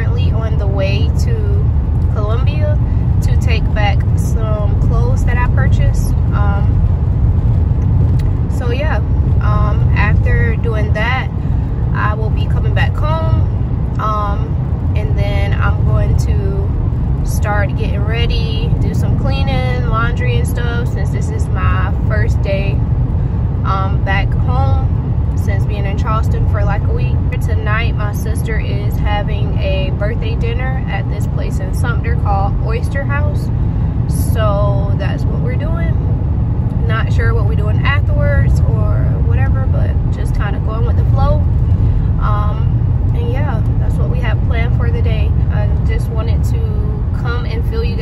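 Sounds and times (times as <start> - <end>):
woman talking: 0.0 - 6.8, 8.5 - 22.8, 23.6 - 33.5, 34.1 - 36.0, 36.8 - 41.5, 42.1 - 48.0
car road and engine rumble: 0.0 - 48.0.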